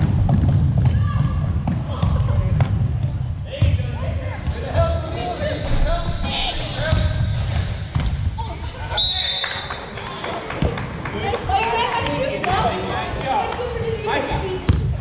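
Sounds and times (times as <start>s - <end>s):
basketball bouncing on wooden floor: 0.0s - 3.7s.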